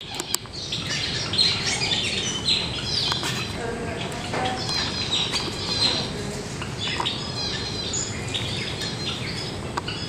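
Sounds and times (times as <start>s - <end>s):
birds chirping and squawking: 0.0s - 10.0s.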